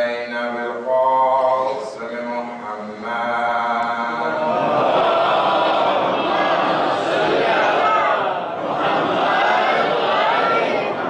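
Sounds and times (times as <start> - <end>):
man chanting: 0.0 - 4.8
mass of voices chanting: 0.7 - 11.0.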